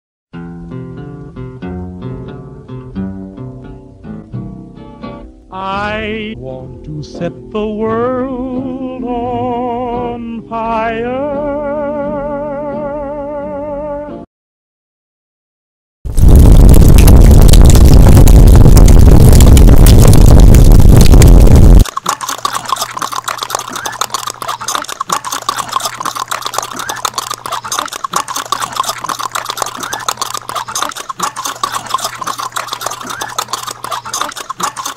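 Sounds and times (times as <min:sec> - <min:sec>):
loud distorted noise blast: 0:16.1 - 0:21.8
rapid clicking: 0:16.2 - 0:34.9.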